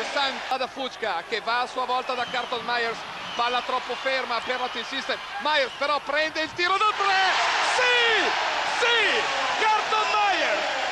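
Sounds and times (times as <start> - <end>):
arena crowd cheering: 0.0 - 10.9
excited shouting voices: 6.7 - 10.9.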